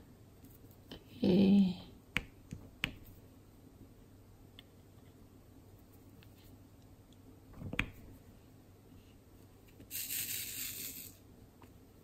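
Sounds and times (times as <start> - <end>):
small resin beads rattling: 9.9 - 11.2.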